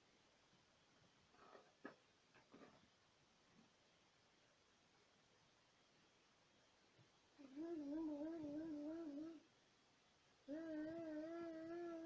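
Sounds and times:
child humming: 7.4 - 9.5, 10.5 - 12.0.

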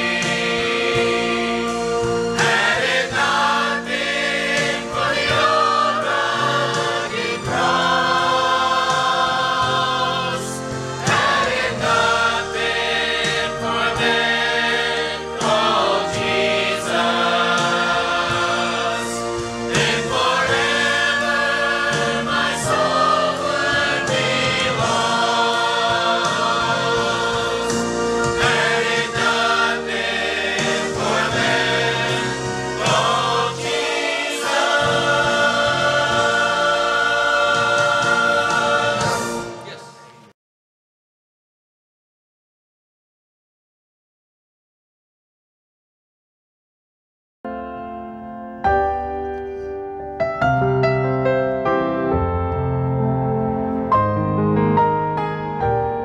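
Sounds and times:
choir singing a hymn: 0.0 - 40.3.

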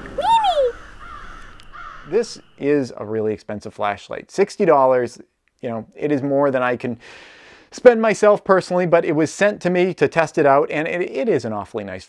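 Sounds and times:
cartoon squawk sound effect: 0.1 - 2.2
faint hiss: 2.1 - 9.8.

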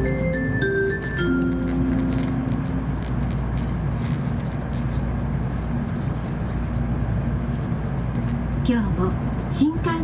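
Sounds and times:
train rumble inside passenger car: 0.0 - 10.0.

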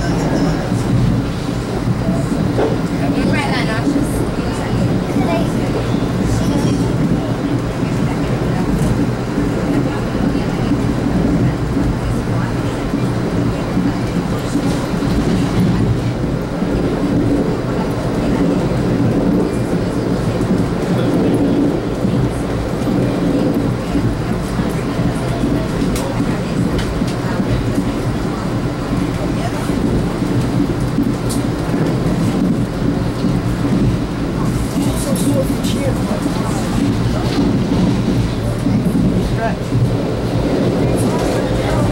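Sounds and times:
train coach rumbling on rails: 0.0 - 41.9.

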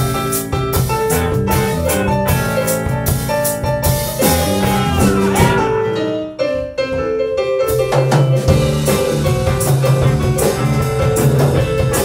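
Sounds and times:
live blues band: 0.0 - 6.4, 7.4 - 12.0
electric guitar bending notes: 4.1 - 6.6.

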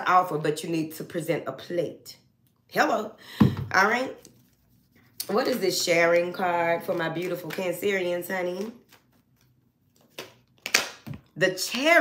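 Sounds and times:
papery card rustle: 6.7 - 10.8
card snap: 10.0 - 11.2.

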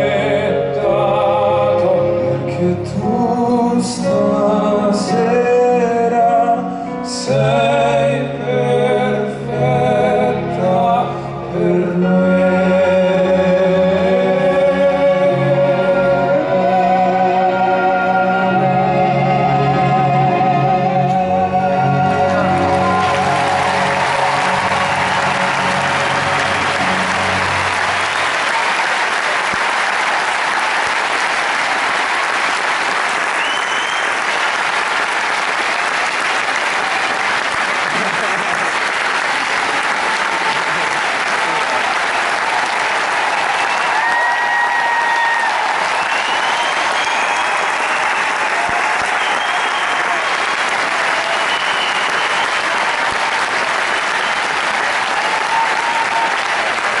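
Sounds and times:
audience applauding and cheering: 21.5 - 57.0
shrill whistle: 33.4 - 34.3, 45.9 - 50.3, 51.2 - 52.8.

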